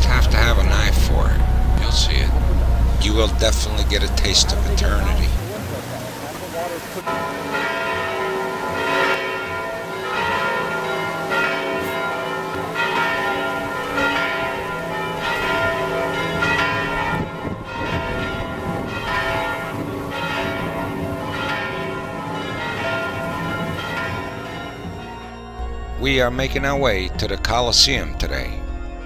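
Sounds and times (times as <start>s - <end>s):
church bells ringing: 0.0s - 29.0s.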